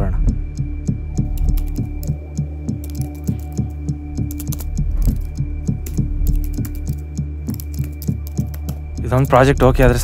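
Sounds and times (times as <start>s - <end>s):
typing on laptop keyboard: 1.3s - 9.4s.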